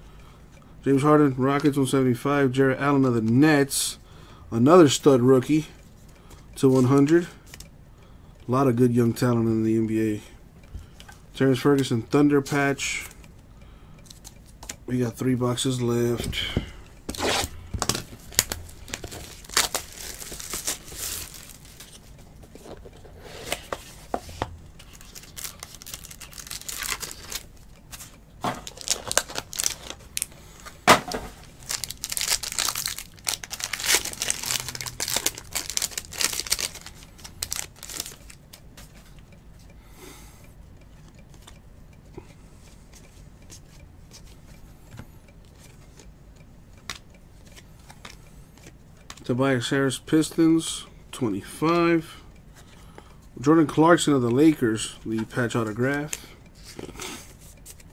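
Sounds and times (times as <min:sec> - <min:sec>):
foil wrapper tearing and crinkling: 0:18.3 - 0:21.9, 0:24.9 - 0:27.5, 0:28.6 - 0:30.3, 0:31.4 - 0:38.4.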